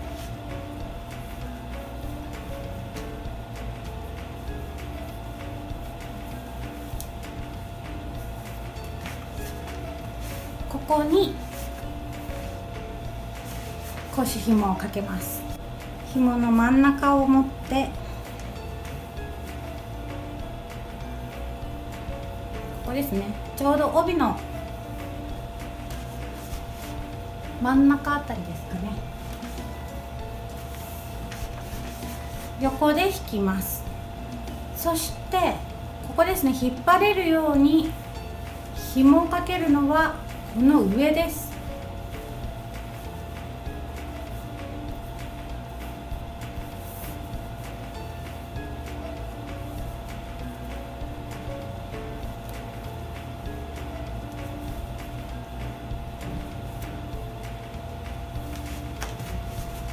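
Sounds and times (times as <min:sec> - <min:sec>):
fabric rustling: 0:00.0 - 0:02.9, 0:04.0 - 0:16.8, 0:22.4 - 0:27.7, 0:28.3 - 0:33.4, 0:37.3 - 0:50.8, 0:56.3 - 0:59.9
steady low hum: 0:00.0 - 0:59.9
cloth rustling and sliding: 0:08.2 - 0:12.6, 0:13.3 - 0:14.6, 0:25.9 - 0:27.2, 0:29.1 - 0:32.8, 0:46.6 - 0:48.4, 0:58.4 - 0:59.9
cloth swish: 0:08.2 - 0:12.6, 0:13.3 - 0:14.8, 0:25.8 - 0:27.3, 0:29.0 - 0:32.8, 0:46.6 - 0:49.0, 0:58.4 - 0:59.9.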